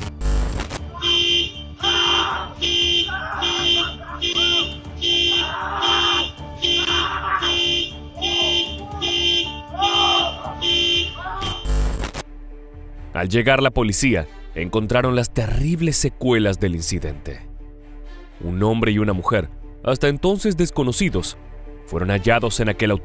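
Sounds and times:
car alarm horn honking: 0.9s - 12.0s
person screaming: 1.8s - 11.6s.

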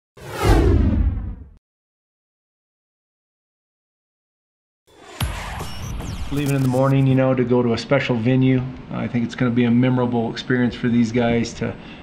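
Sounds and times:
whoosh sound effect: 0.2s - 1.5s
deep boom: 0.2s - 1.6s, 5.1s - 6.9s.

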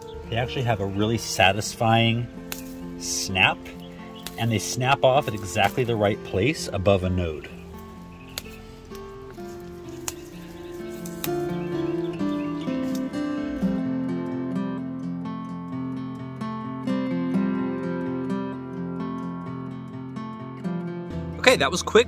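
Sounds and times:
acoustic guitar music: 0.0s - 22.0s
plant stems snapping: 1.4s - 13.6s.

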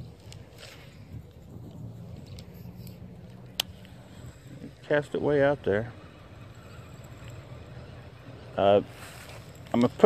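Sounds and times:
fishing rod and reel casting: 0.0s - 10.0s
low steady rumble: 0.0s - 10.0s.

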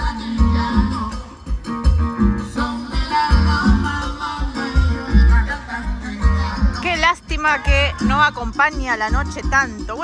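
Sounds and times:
live band playing latin dance music: 0.0s - 10.0s
repeating bass beat: 0.0s - 10.0s.

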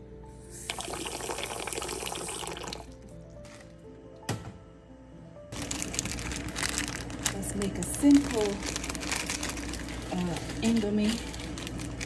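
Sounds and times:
water pouring into a pot: 0.5s - 3.2s.

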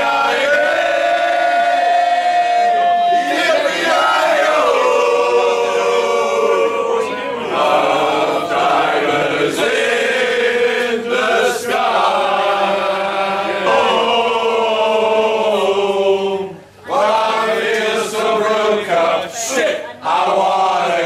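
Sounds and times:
group of men singing: 0.0s - 21.0s.

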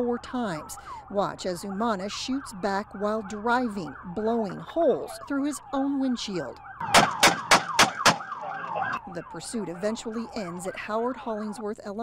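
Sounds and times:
siren yelping: 0.0s - 11.8s.

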